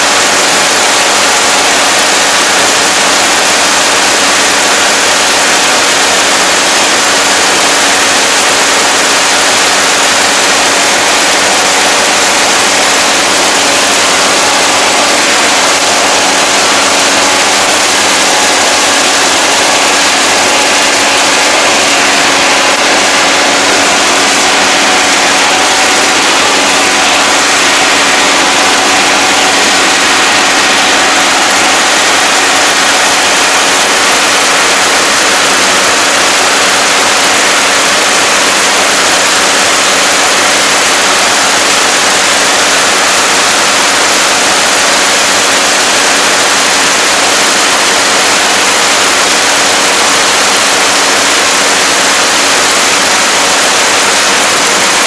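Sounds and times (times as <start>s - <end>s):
combine harvester running: 0.0s - 55.0s.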